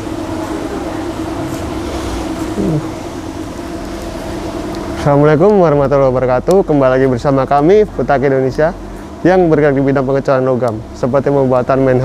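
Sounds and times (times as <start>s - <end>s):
steady hum with tone: 0.0s - 12.0s.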